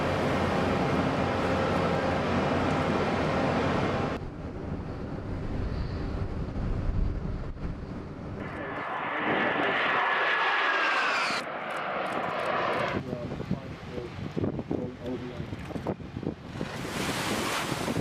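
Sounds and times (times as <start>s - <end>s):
high engine whine passing: 0.0s - 14.0s
rush of spray: 16.8s - 18.0s.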